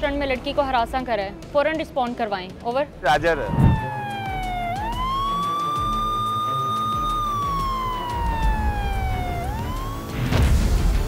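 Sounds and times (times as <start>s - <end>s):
police siren wailing: 3.1s - 10.4s.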